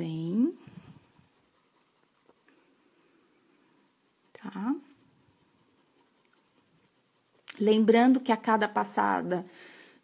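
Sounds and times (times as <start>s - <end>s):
pencil scratching on paper: 0.0s - 9.2s.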